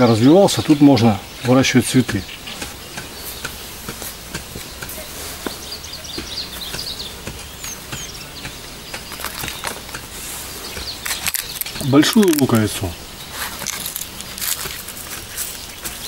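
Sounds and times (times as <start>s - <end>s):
faint bird chirps: 0.0s - 14.0s
hand scraping sandy soil: 0.2s - 16.0s.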